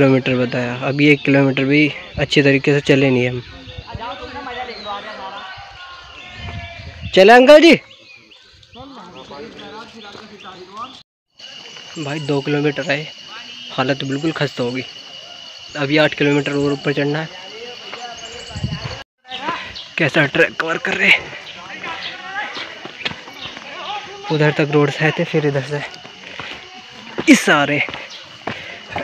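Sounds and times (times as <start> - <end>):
bird chirping: 0.0 - 29.0
faint voices: 8.2 - 29.0
footsteps on rocky dirt path: 21.0 - 29.0.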